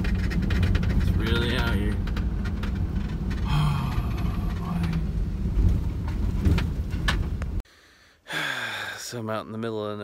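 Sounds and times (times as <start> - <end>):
knocks and rattles: 0.0 - 7.6
vehicle rumbling on gravel road: 0.0 - 7.6.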